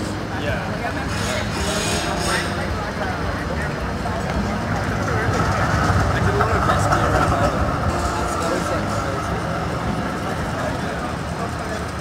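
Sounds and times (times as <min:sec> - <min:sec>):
passers-by talking: 0:00.0 - 0:12.0
traffic rumble: 0:00.0 - 0:12.0.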